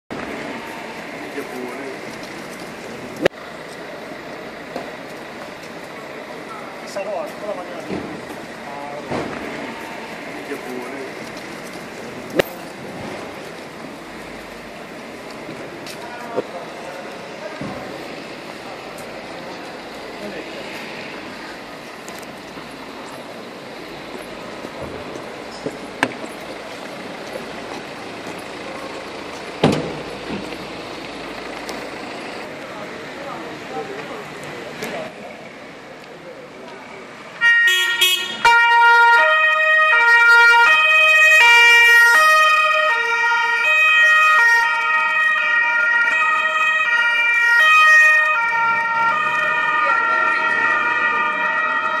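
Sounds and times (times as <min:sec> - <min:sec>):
outdoor street noise: 0:00.0 - 0:52.0
police sirens: 0:00.1 - 0:52.0.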